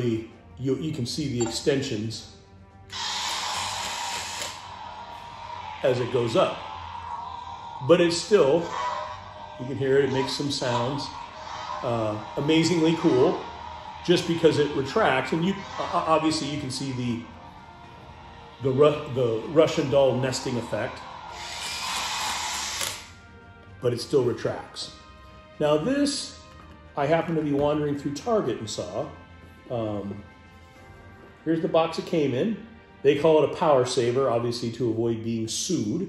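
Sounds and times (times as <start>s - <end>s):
toy motor whirring: 2.9s - 4.6s, 21.3s - 23.1s.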